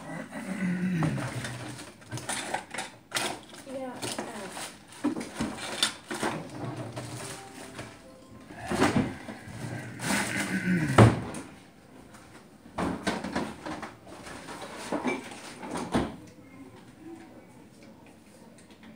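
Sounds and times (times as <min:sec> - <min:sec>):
indistinct voices: 0:07.6 - 0:11.5
knocks and bumps of kitchen objects: 0:08.6 - 0:11.5, 0:12.7 - 0:16.2.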